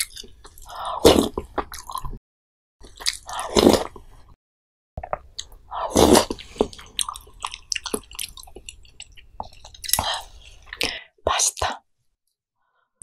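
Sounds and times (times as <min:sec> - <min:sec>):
wet chewing mouth sounds: 0:05.0 - 0:11.0.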